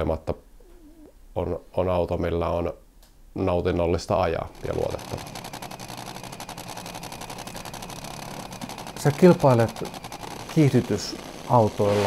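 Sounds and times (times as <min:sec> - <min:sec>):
dragster engine idling: 0:04.5 - 0:12.0
rapid rattle of pops: 0:04.6 - 0:12.0.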